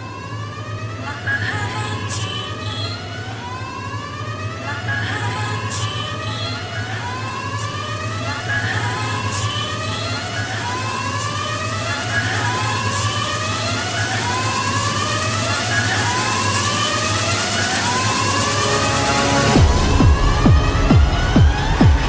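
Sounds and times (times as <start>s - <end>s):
siren-like synthesizer sweep: 0.0s - 22.0s
low bass drone: 13.4s - 22.0s.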